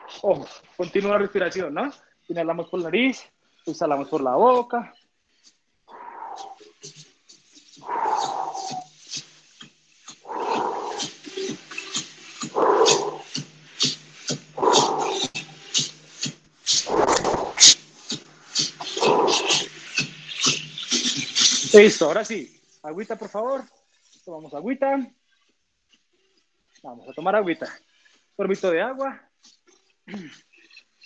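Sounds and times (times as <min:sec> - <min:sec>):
man breathing hard: 0:07.8 - 0:09.3, 0:10.2 - 0:11.2, 0:12.4 - 0:13.3, 0:14.6 - 0:15.3.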